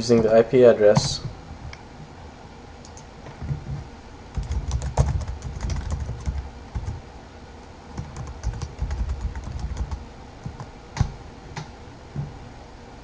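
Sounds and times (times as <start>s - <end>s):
typing on computer keyboard: 4.4s - 7.0s, 7.9s - 11.7s.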